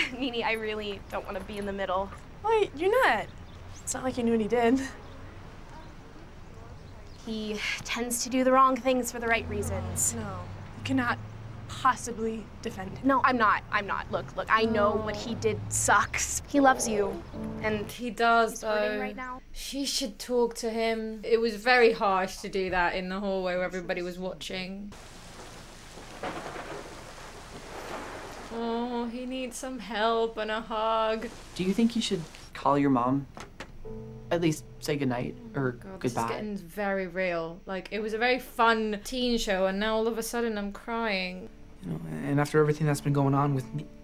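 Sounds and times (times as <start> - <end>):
steady rain falling: 24.9 - 33.0.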